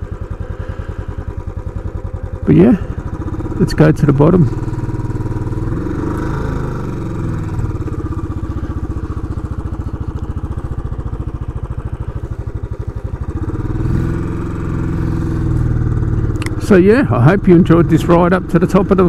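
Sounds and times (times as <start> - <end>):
motorcycle engine pulling away: 0.0 - 19.0.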